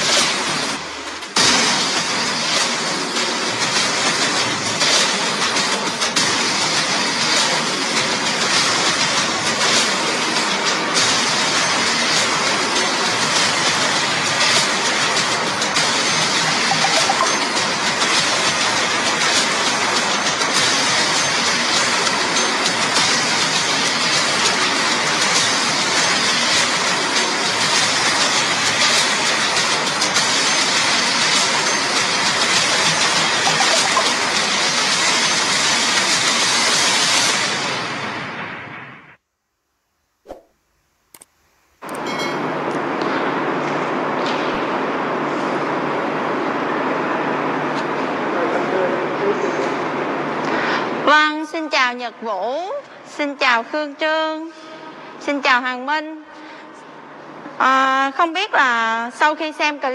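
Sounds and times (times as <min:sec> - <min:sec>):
loud steady rushing noise: 0:00.0 - 0:38.8, 0:41.9 - 0:51.4.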